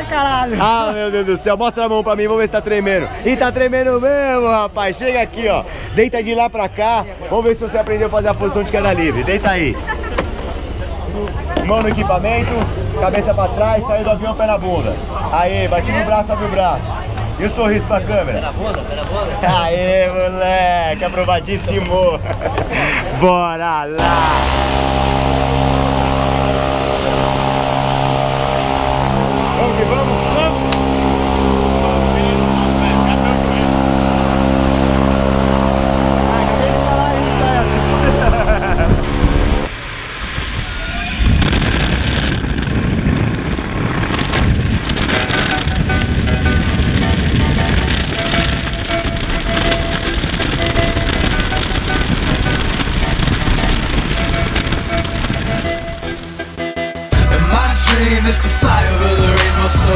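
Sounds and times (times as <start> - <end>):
voices: 0.0 - 39.7
propeller plane engine droning: 24.0 - 56.6
wind noise in flight: 24.0 - 56.6.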